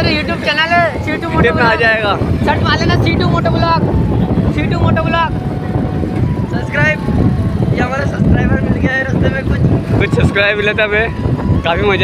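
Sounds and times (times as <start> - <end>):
motorcycle engine rumble: 0.0 - 12.0
voices: 0.0 - 12.0
wind rush: 0.0 - 12.0.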